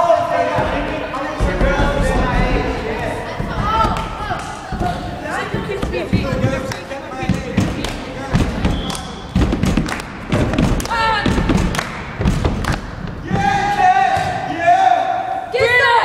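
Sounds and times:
echoing thuds and knocks: 0.5 - 14.5
people shouting: 10.8 - 11.6, 13.2 - 16.0.

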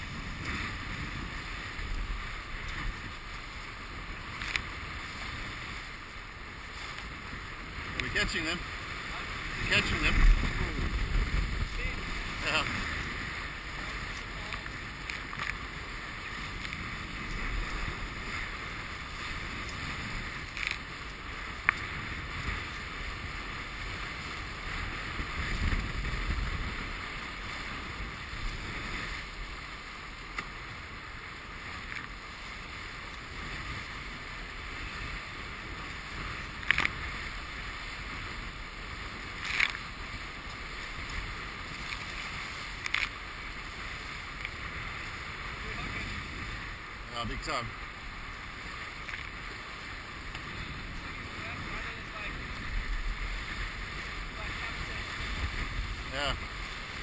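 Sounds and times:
water rushing along hulls: 0.0 - 57.0
wind buffeting microphone: 0.0 - 57.0.

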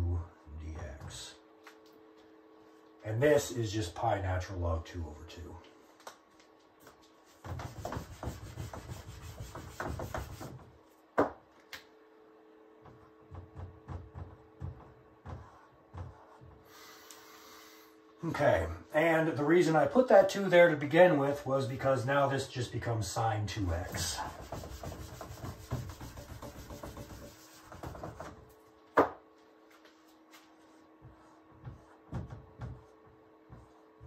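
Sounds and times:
eraser scrubbing whiteboard: 7.2 - 10.6, 15.2 - 17.0, 23.6 - 28.3, 30.3 - 34.0.

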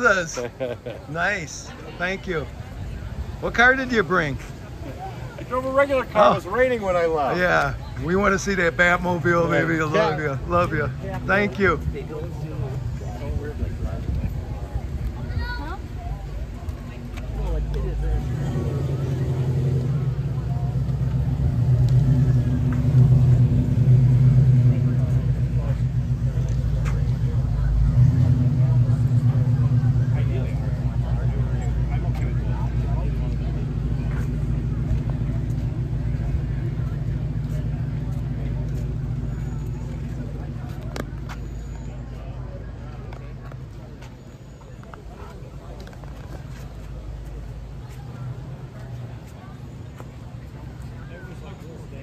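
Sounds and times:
car engine rumbling: 0.0 - 52.0.

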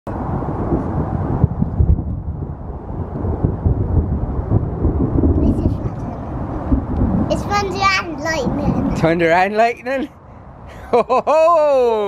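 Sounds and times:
thunder rumbling: 0.1 - 9.2.

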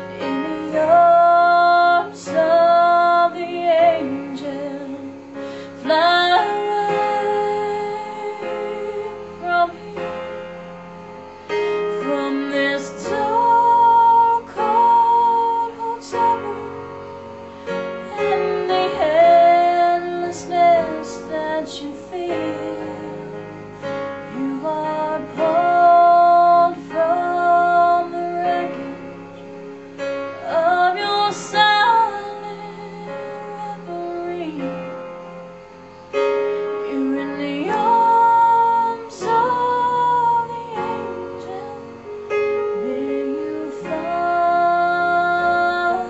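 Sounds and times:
woman singing: 0.0 - 10.5, 11.8 - 17.1, 18.0 - 23.5, 24.2 - 29.6, 30.4 - 35.0, 36.8 - 46.0.

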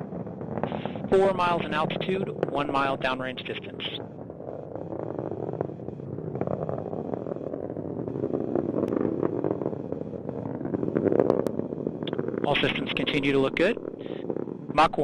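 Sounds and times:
rocket roaring: 0.0 - 15.0.

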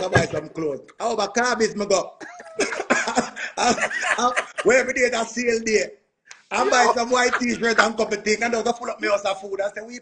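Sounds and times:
men laughing hard: 2.2 - 4.8, 6.8 - 7.9.

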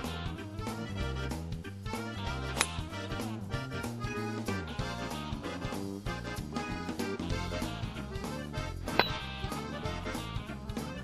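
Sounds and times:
swing music with accordion: 0.0 - 11.0
golf club striking ball: 2.6 - 2.8, 8.9 - 9.3.

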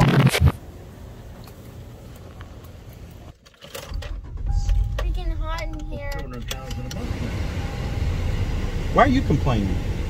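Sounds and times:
low background rumble: 0.6 - 10.0.

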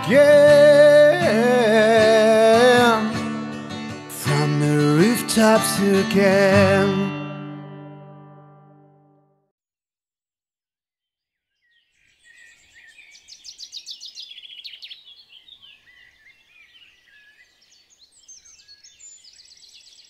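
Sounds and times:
birds chirping and trilling: 11.4 - 20.0.

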